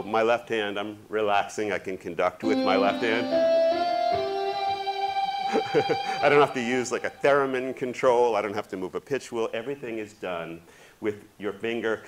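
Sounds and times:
guitar-like synth lead: 0:02.4 - 0:07.8
man laughing: 0:05.5 - 0:07.1.

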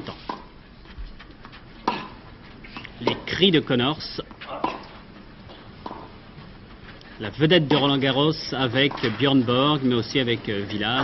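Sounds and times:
tennis ball struck by rackets: 0:01.8 - 0:02.2, 0:04.4 - 0:05.0, 0:05.8 - 0:06.1, 0:08.8 - 0:09.2.

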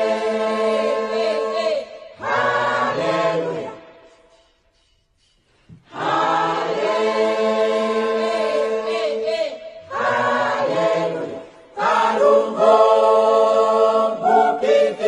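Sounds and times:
choir singing gospel song: 0:00.0 - 0:15.0.

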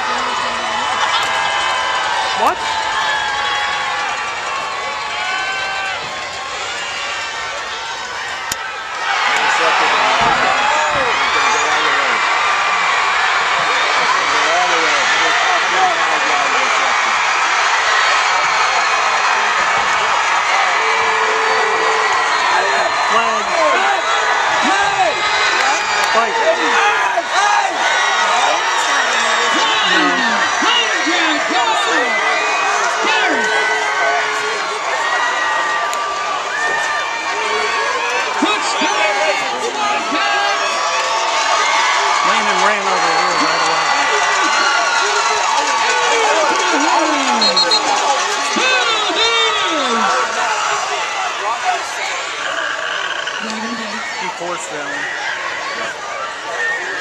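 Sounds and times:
crowd cheering and shouting: 0:00.0 - 0:57.0.

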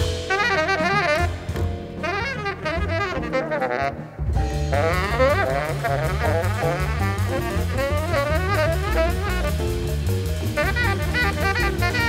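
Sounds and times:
bass: 0:00.0 - 0:12.0
drums: 0:00.0 - 0:12.0
horn playing jazz melody: 0:00.0 - 0:12.0.

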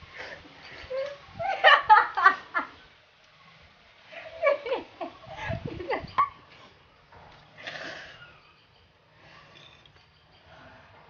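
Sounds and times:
woman laughing: 0:00.8 - 0:02.8, 0:04.2 - 0:06.4
quiet breathy sound: 0:06.5 - 0:11.0.

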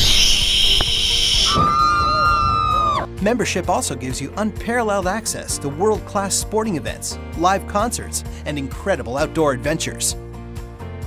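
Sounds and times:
zipline rushing hiss: 0:00.0 - 0:02.4
person screaming: 0:01.5 - 0:03.1.

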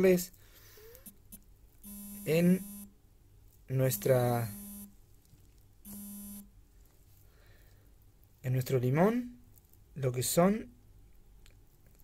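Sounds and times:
mobile phone vibrating: 0:01.8 - 0:02.9, 0:03.9 - 0:04.9, 0:05.9 - 0:06.5.

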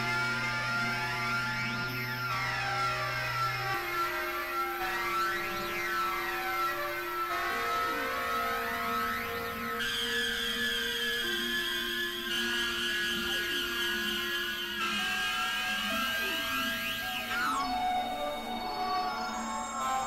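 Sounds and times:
synthesizer drone: 0:00.0 - 0:20.0.

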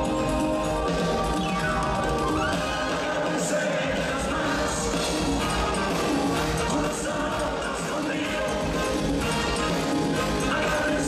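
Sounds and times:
live band playing latin pop: 0:00.0 - 0:11.0.

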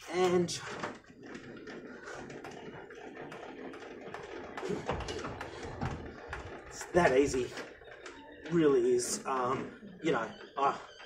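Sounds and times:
jockey wheel clicking: 0:00.0 - 0:11.0.

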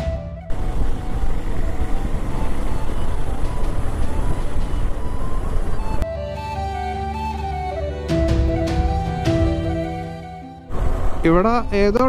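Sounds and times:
background music: 0:00.0 - 0:12.0
motorcycle road noise: 0:00.4 - 0:06.0, 0:10.6 - 0:11.8
wind rush on microphone: 0:00.5 - 0:06.0, 0:10.7 - 0:12.0.

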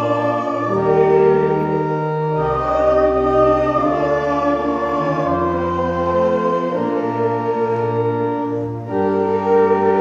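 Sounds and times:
church organ chords: 0:00.0 - 0:10.0.

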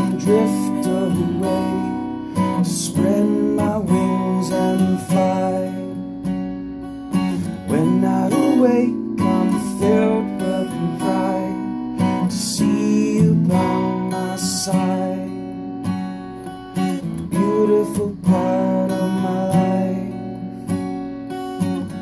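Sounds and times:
man singing: 0:00.0 - 0:06.2, 0:07.2 - 0:15.6, 0:16.8 - 0:20.8
acoustic guitar strumming chords: 0:00.0 - 0:22.0.

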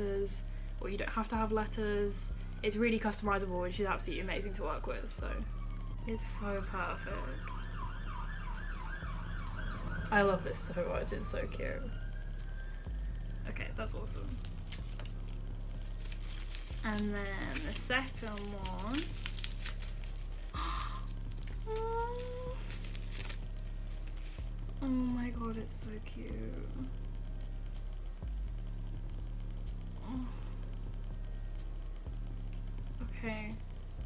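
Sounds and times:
bubble wrap crinkling: 0:00.0 - 0:32.9
low steady hum: 0:00.0 - 0:34.0
emergency siren yelp wail: 0:05.5 - 0:13.0.

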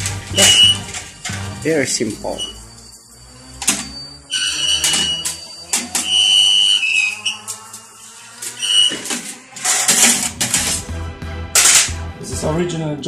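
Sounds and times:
high whistle-like tones: 0:00.3 - 0:09.9
metal plate clattering: 0:08.9 - 0:10.8.

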